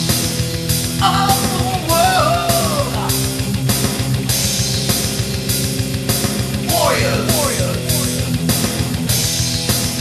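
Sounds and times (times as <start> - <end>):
heavy metal guitars: 0.0 - 10.0.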